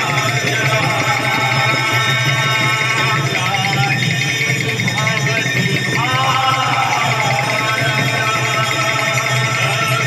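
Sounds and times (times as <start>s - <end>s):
hand drum and percussion rhythm: 0.0s - 10.0s.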